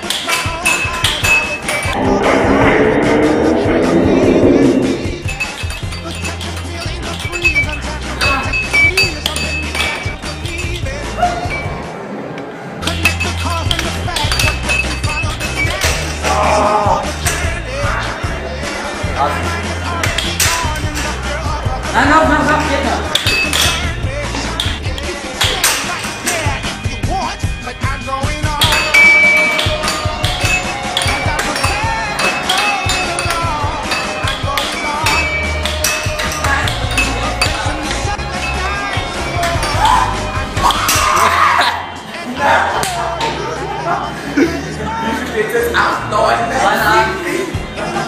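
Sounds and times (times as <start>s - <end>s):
air hockey puck clacking: 0.0s - 2.0s, 12.8s - 16.3s, 19.8s - 21.5s, 22.4s - 26.8s, 28.4s - 41.3s
electronic arcade music: 0.0s - 11.9s, 12.8s - 48.0s
arcade machine beeps: 4.7s - 11.8s, 14.6s - 16.1s, 28.9s - 33.2s.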